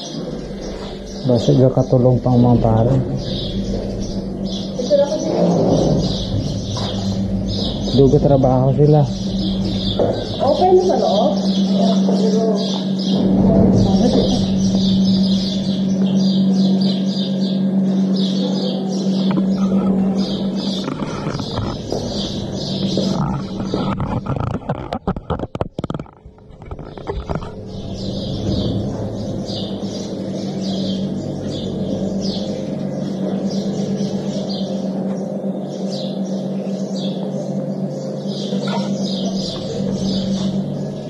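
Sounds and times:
small birds chirping: 0:00.0 - 0:41.0
steady low hum: 0:00.0 - 0:41.0
clicks and rustling: 0:22.9 - 0:27.6.

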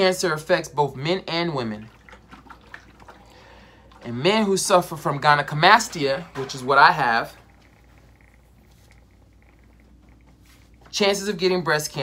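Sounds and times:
faint low hum: 0:00.0 - 0:12.0
soft irregular fluttering: 0:01.9 - 0:11.4.

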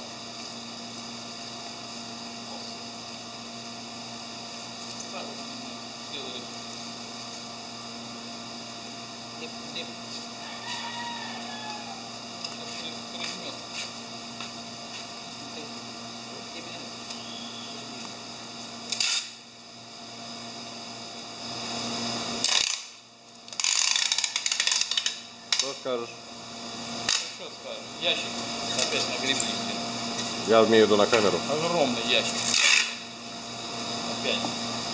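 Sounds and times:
steady equipment hum: 0:00.0 - 0:34.9.

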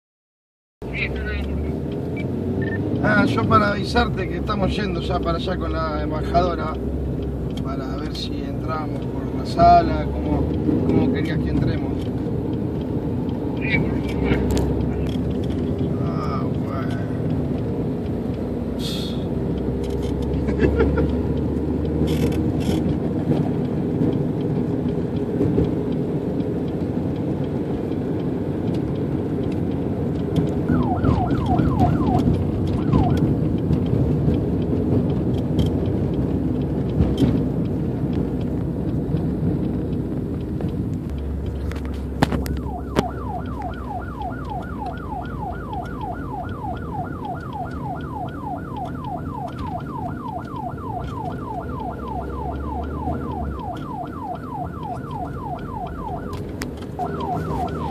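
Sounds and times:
car engine and road noise: 0:00.8 - 0:57.9
police siren wailing: 0:29.6 - 0:34.0, 0:42.2 - 0:57.9.

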